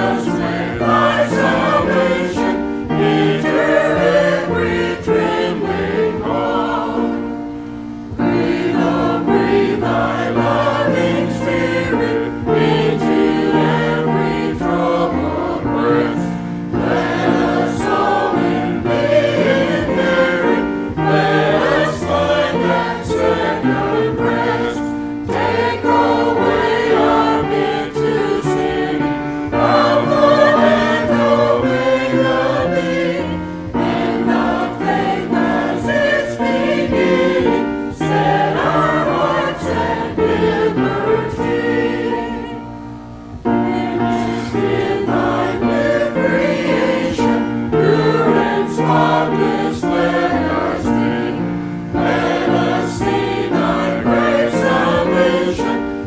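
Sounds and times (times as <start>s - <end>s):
choir and congregation singing hymn: 0.0s - 56.0s.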